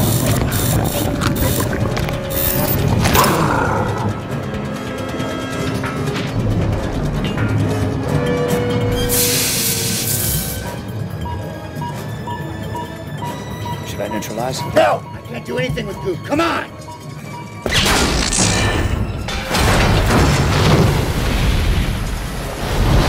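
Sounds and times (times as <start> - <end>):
dark orchestral film score: 0.1 - 23.0.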